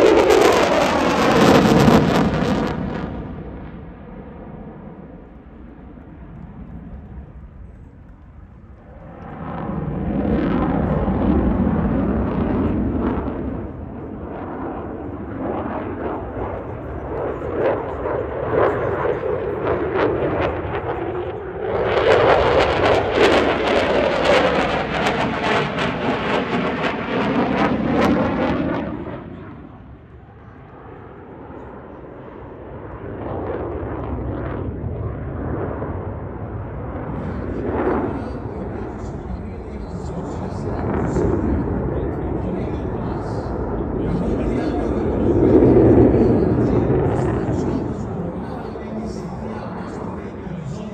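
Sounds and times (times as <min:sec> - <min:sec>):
fighter jet engine roaring: 0:00.0 - 0:50.9.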